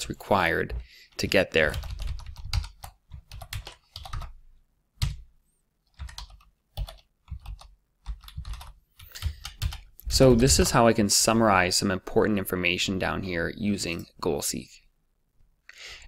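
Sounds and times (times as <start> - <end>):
computer keyboard keys clicking: 1.7 - 4.3, 5.9 - 9.9.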